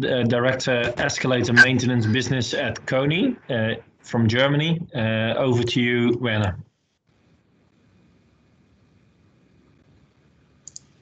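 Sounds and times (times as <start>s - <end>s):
faint room hiss: 0.0s - 11.0s
computer mouse double-click: 10.6s - 10.9s.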